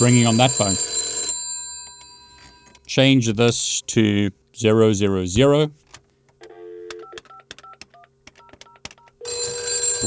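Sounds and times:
telephone ringing: 0.0 - 2.8, 6.4 - 7.8, 8.4 - 10.0.

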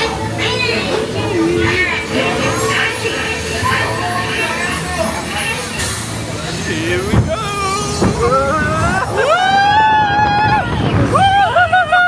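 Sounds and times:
log flume boat rumble: 0.0 - 12.0.

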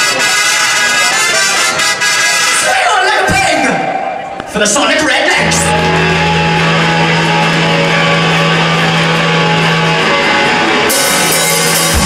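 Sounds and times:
deep bass note: 5.4 - 12.0
distorted electric guitar chord: 5.4 - 12.0
steady low drone: 5.4 - 12.0.

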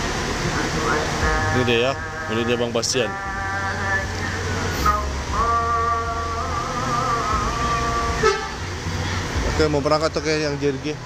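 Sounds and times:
multi-tone bus horn: 0.0 - 9.3
low engine rumble: 0.0 - 11.0.

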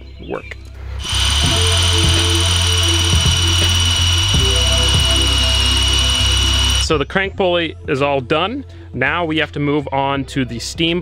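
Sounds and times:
background music: 0.0 - 11.0
electric drill whining: 1.0 - 6.9.

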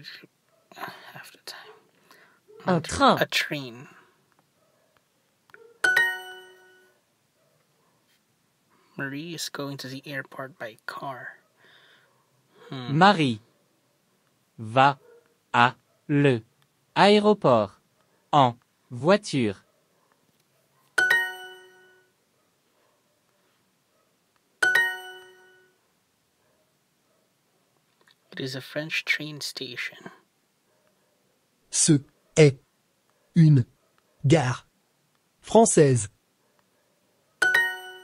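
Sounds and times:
two-note app chime: 5.8 - 6.9, 21.0 - 22.0, 24.6 - 25.7, 37.4 - 38.0.

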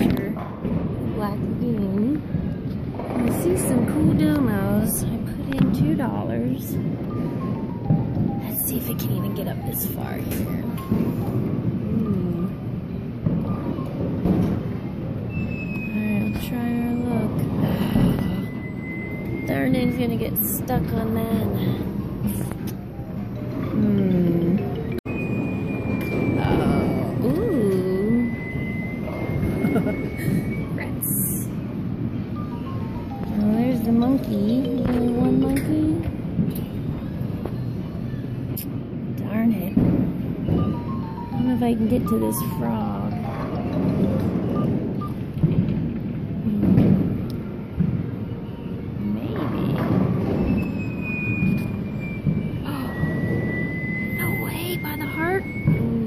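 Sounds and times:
low rumble of arcade machines: 0.0 - 56.0
faint electronic beeps: 3.3 - 14.6, 15.2 - 45.4, 47.4 - 56.0
thin steady high tone: 15.3 - 36.1, 48.3 - 56.0.

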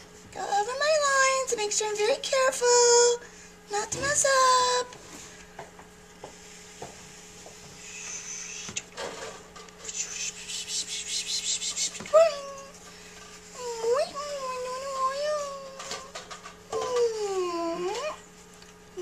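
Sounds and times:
wavering high-pitched vocal sound: 9.9 - 12.8.

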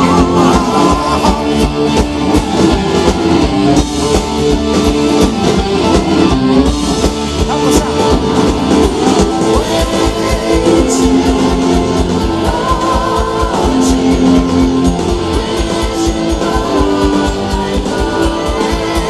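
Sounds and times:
bass guitar: 0.0 - 19.0
driving drum beat: 0.0 - 19.0
electric guitar: 0.0 - 19.0
keyboards: 0.0 - 19.0.

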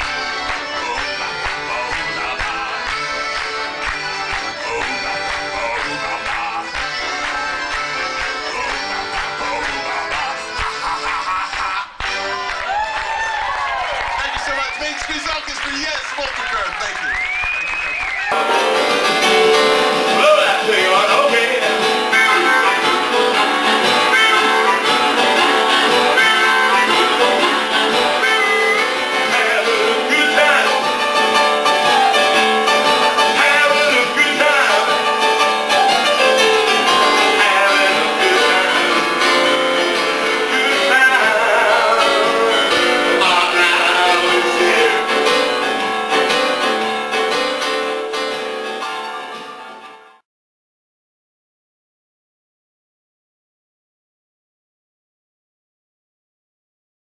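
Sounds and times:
keyboard chords: 0.0 - 11.4, 18.3 - 50.2
harmonica playing: 0.0 - 12.7, 18.2 - 50.0.

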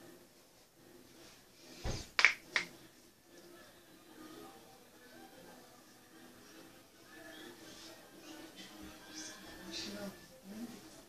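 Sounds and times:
hands snapping together: 2.1 - 2.8.

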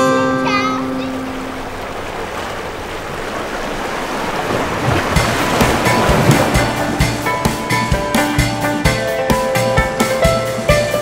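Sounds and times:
sea waves: 0.0 - 11.0
wind: 0.0 - 11.0
music with drum beat: 5.1 - 11.0.

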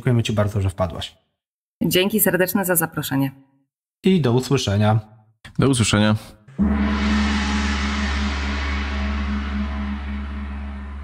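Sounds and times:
deep gong-like hit ringing: 6.5 - 11.0.

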